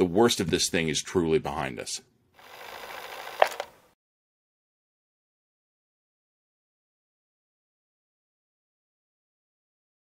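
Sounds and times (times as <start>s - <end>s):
tape hiss: 2.4s - 3.8s
tape deck mechanical click: 2.9s - 3.8s.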